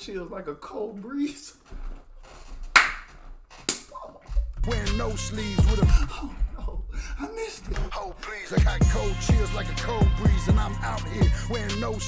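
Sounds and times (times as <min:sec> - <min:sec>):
sharp claps: 0:02.7 - 0:03.1.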